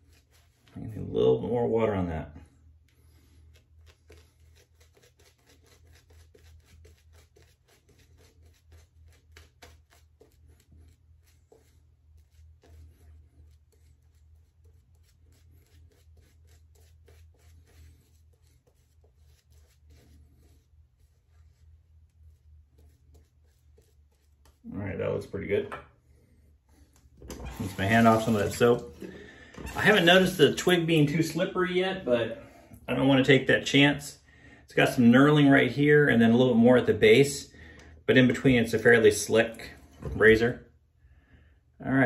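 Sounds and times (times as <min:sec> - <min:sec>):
shaving brush scrubbing: 0:00.0 - 0:31.8, 0:38.1 - 0:40.5.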